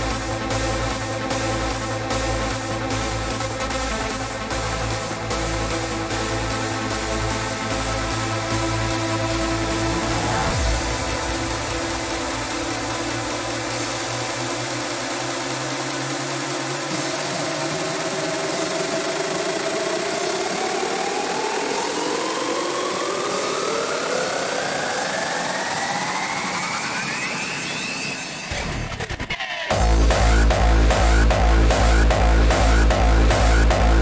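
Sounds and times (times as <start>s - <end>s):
synth tones rising in pitch: 16.9s - 34.0s.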